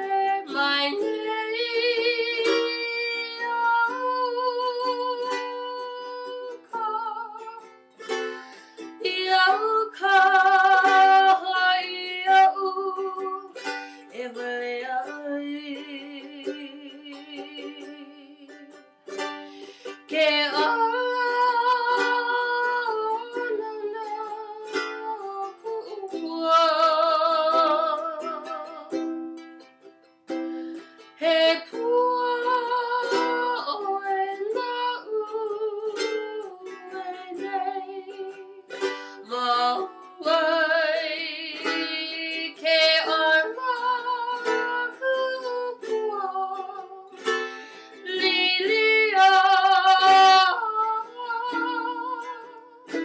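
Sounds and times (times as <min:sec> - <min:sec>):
woman singing with vibrato: 0:00.0 - 0:29.3, 0:30.7 - 0:53.0
ukulele: 0:00.0 - 0:53.0.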